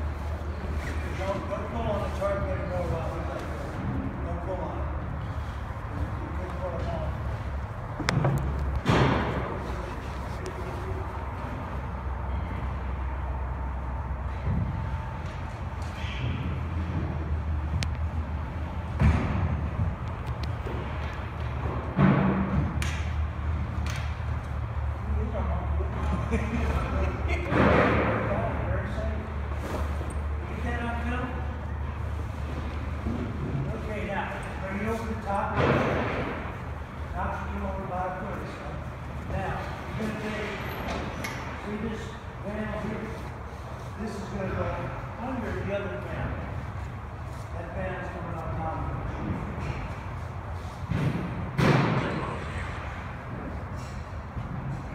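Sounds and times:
steady low hum: 0:00.0 - 0:54.9.

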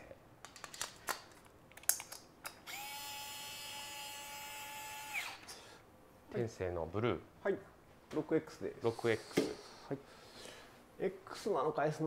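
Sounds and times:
electric screwdriver motor whine: 0:02.6 - 0:05.5.

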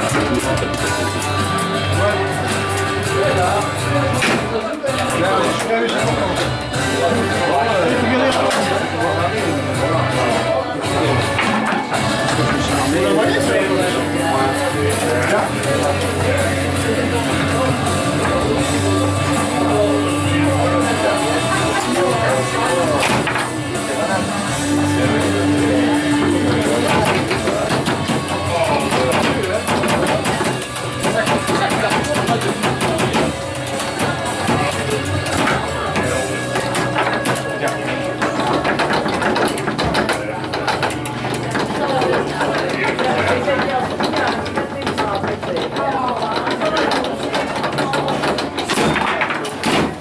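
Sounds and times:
background music: 0:00.0 - 0:50.0
indistinct chatter: 0:00.0 - 0:50.0
foosball ball strikes and rod clacks: 0:02.5 - 0:05.7, 0:11.1 - 0:14.1, 0:20.9 - 0:23.6, 0:26.1 - 0:50.0.

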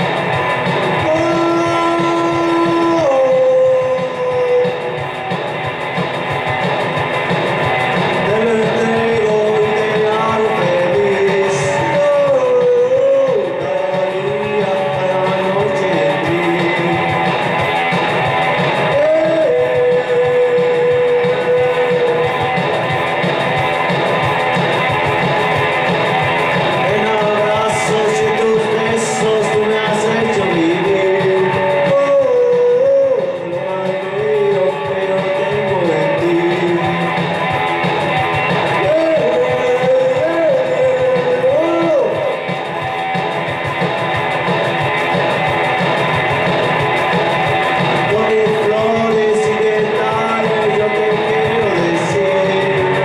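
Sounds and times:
backing beat: 0:00.0 - 0:53.0
rock electric guitar: 0:00.0 - 0:53.0.

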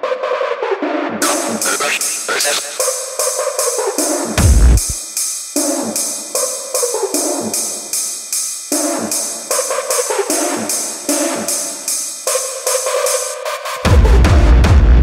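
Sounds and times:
fast hi-hat percussion: 0:01.2 - 0:14.5.

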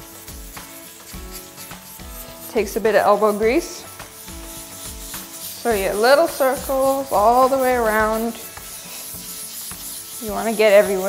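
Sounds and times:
background music with steady beat: 0:00.0 - 0:11.0
sandpaper rubbing on resin: 0:00.0 - 0:11.0.

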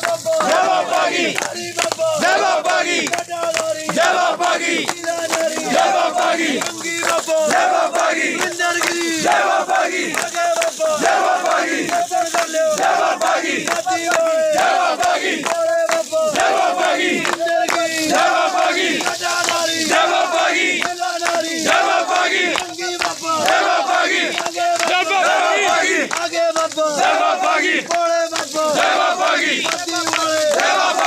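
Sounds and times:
crowd of men shouting a chant: 0:00.0 - 0:31.0.

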